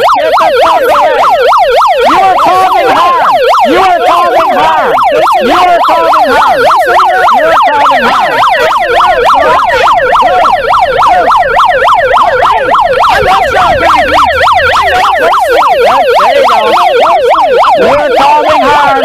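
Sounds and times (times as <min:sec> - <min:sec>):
megaphone siren yelping: 0:00.0 - 0:19.0.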